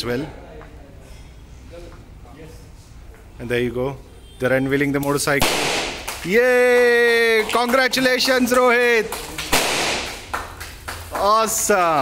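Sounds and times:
hand claps: 5.8 - 12.0.

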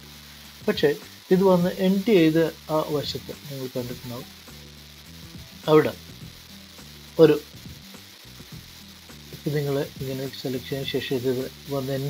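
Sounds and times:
microphone hiss: 0.0 - 12.0
person speaking: 0.7 - 4.3, 5.6 - 6.0, 7.2 - 7.5, 9.4 - 12.0.

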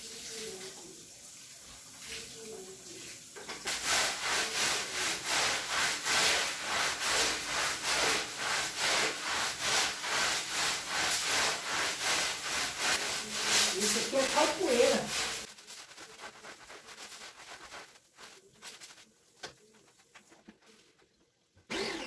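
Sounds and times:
scrub brush scrubbing wet rug: 3.7 - 20.8.

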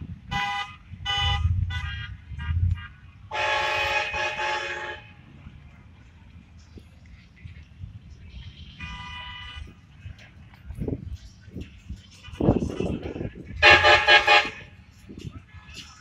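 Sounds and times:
low traffic noise: 0.0 - 16.0
vehicle horns honking: 0.3 - 5.2, 8.8 - 9.7, 13.6 - 14.8.

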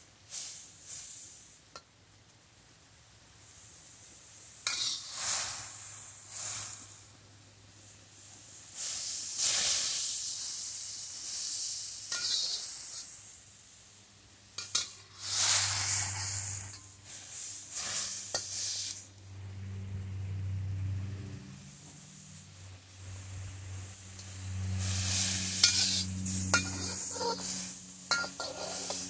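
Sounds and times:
vegetables sizzling in a wok: 0.0 - 1.9, 3.4 - 29.0
metal spatula scraping a wok: 4.6 - 6.9, 12.1 - 13.2, 14.6 - 19.0, 23.3 - 29.0
low hum: 19.1 - 29.0.

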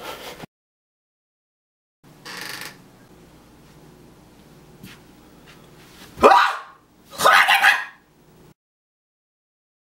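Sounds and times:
harsh bark-like cries: 6.2 - 8.0.

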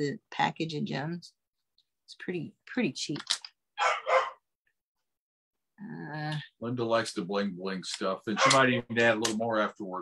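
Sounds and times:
person speaking: 7.2 - 10.0.

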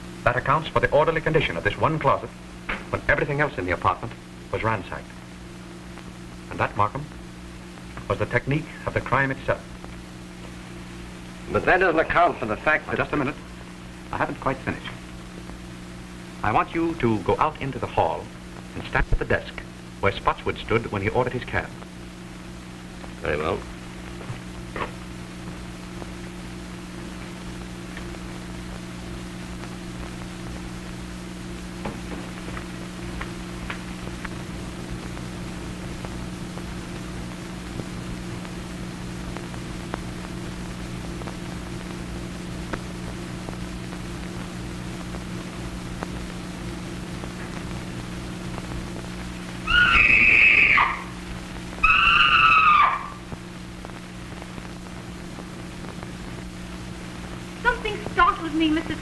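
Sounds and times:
low film track hum: 0.0 - 59.0
high-pitched screams: 49.6 - 51.2, 51.8 - 53.2.

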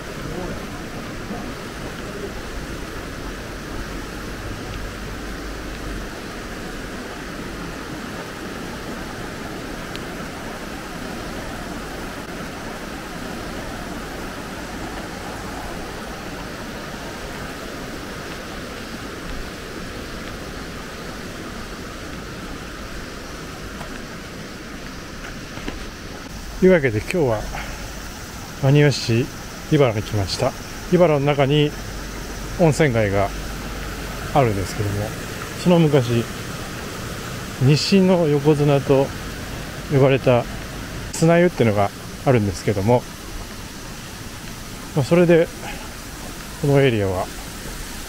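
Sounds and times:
river rushing: 0.0 - 48.0.

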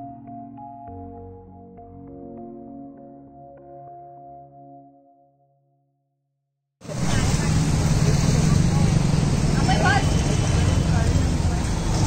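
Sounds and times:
roadside traffic noise: 6.8 - 12.0.

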